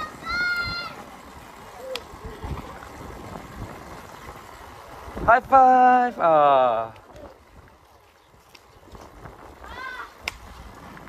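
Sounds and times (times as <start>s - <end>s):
child calling out: 0.0s - 1.0s, 9.6s - 10.2s.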